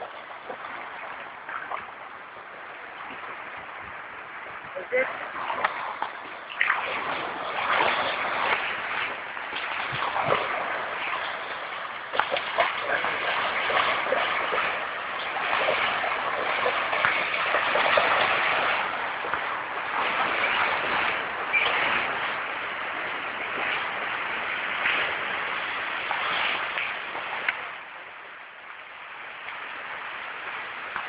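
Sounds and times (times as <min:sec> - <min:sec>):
water splashing: 0:00.0 - 0:31.0.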